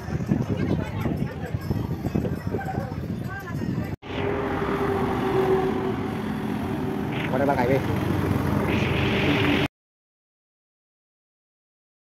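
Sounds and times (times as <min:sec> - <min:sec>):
road traffic hum: 0:04.0 - 0:09.7.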